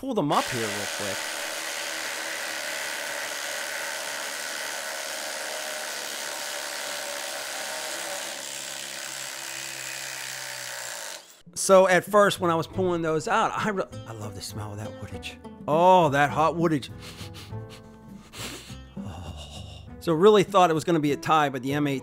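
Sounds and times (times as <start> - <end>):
cordless impact drivers running: 0.4 - 11.4.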